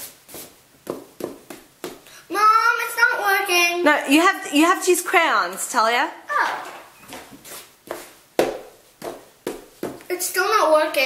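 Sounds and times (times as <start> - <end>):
knocks on hard surface: 8.4 - 10.0.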